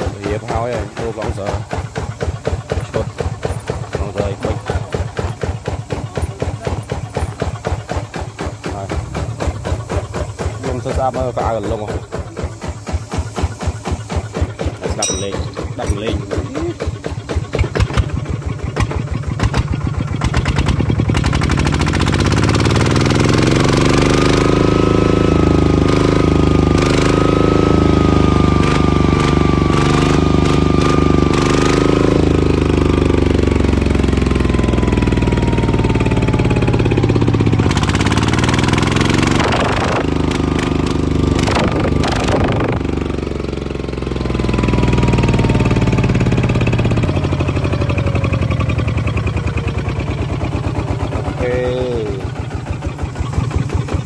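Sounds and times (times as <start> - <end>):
diesel engine running: 0.0 - 54.0
sharp knocks: 14.6 - 16.2.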